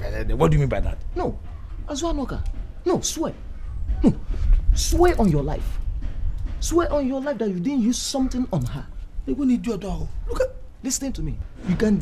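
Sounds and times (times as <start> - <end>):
man talking: 0.0 - 3.4, 4.0 - 5.8, 6.6 - 12.0.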